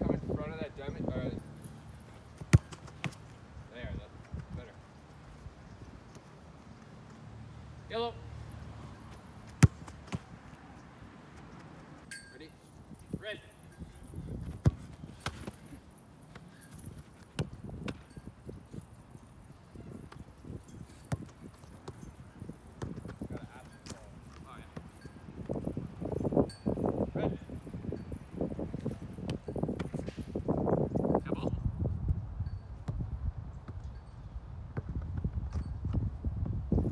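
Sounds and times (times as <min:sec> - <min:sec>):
soccer ball thuds: 0:02.1 - 0:03.4, 0:08.9 - 0:10.6, 0:14.2 - 0:18.3, 0:20.0 - 0:26.2, 0:28.8 - 0:30.4.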